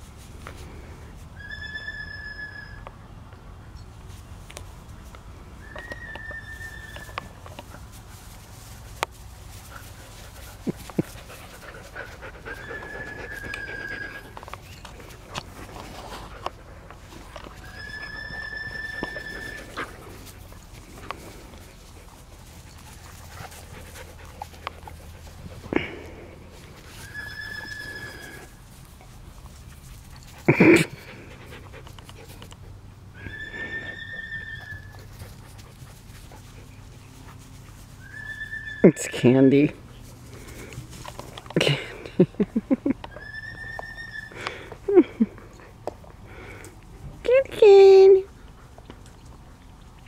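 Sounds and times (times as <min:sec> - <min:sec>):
dog whining: 0:01.4 - 0:02.8, 0:05.6 - 0:07.4, 0:12.0 - 0:14.9, 0:17.3 - 0:20.1, 0:27.0 - 0:28.5, 0:33.2 - 0:35.1, 0:43.1 - 0:45.2.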